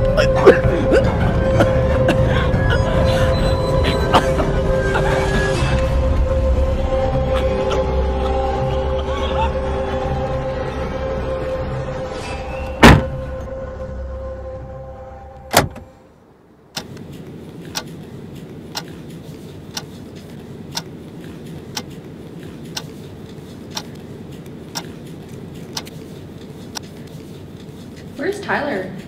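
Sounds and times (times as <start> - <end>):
dark droning horror music: 0.0 - 16.1
heavy impact hits: 12.8 - 13.4
clock ticking: 20.7 - 20.9, 22.7 - 22.9, 23.7 - 23.9, 25.7 - 25.9.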